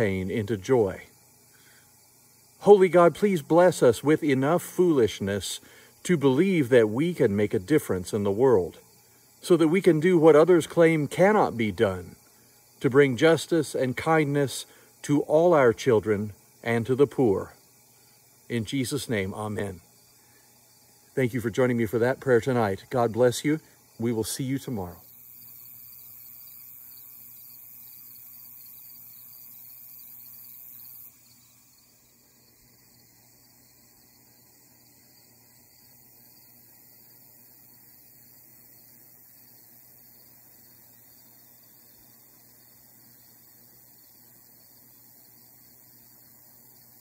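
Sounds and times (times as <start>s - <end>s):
outdoor background hiss: 0.0s - 47.0s.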